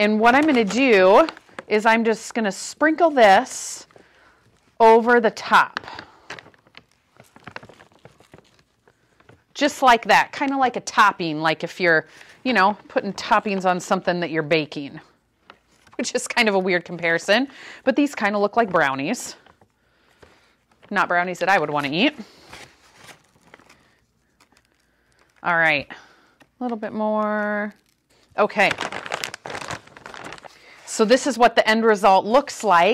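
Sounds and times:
plastic bag rustling: 0.0 - 10.7, 12.1 - 31.4.

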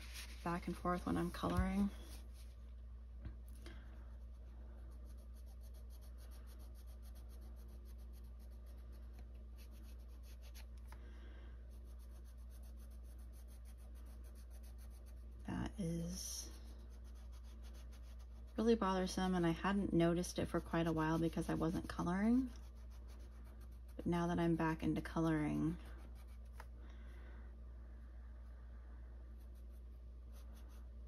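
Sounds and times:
low room hum: 0.0 - 31.0
pencil scratching on paper: 4.3 - 10.7, 11.7 - 15.4, 16.4 - 24.1, 29.4 - 30.9.

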